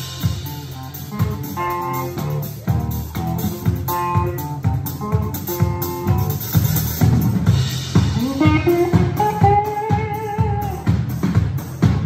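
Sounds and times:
electric guitar bending notes: 0.0s - 11.3s
bass guitar: 0.0s - 12.0s
steady drum beat: 0.0s - 12.0s.

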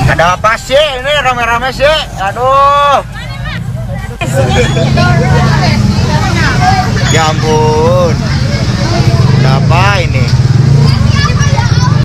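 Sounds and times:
crowd chatter: 0.0s - 12.0s
motorbike engines humming: 0.0s - 12.0s.

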